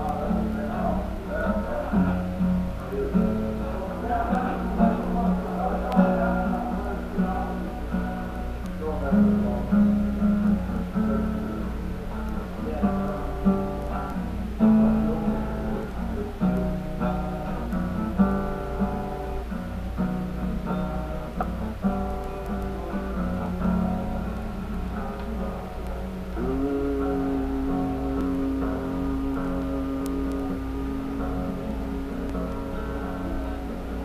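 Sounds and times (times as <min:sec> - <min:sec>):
acoustic guitar strumming chords: 0:00.0 - 0:34.0
steady low hum: 0:00.0 - 0:34.0.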